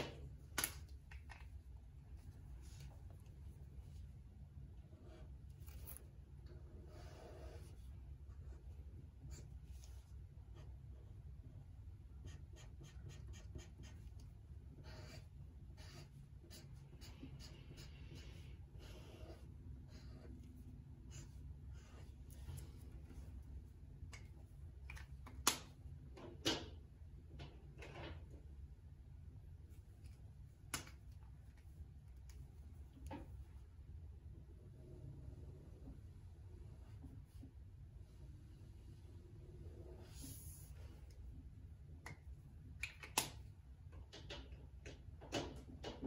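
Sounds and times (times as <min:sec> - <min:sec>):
steady low hum: 0:00.0 - 0:45.8
marker scratching on paper: 0:06.9 - 0:08.6, 0:12.1 - 0:22.8.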